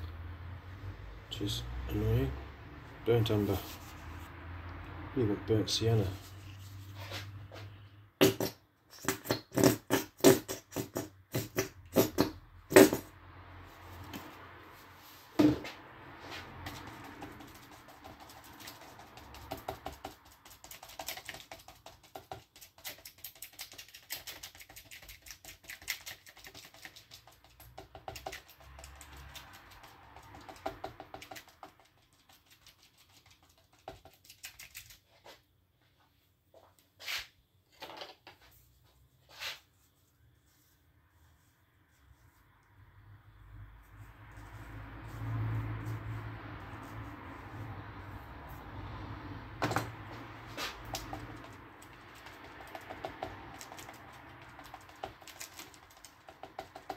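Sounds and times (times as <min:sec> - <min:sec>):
brush dabbing paint on paper: 0:03.2 - 0:04.3, 0:16.1 - 0:35.4, 0:38.4 - 0:48.8, 0:50.0 - 0:56.9.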